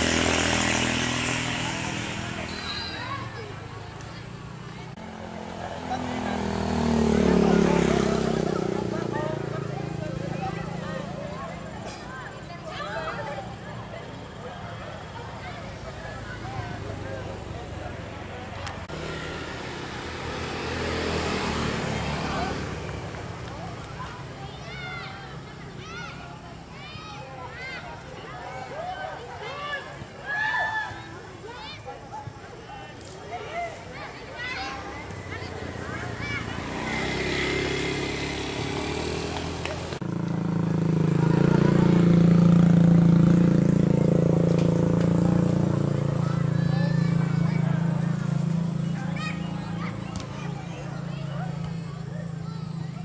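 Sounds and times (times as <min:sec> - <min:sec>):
vehicle engine humming: 0:00.0 - 0:30.1, 0:31.2 - 0:53.0
voices calling out: 0:00.0 - 0:53.0.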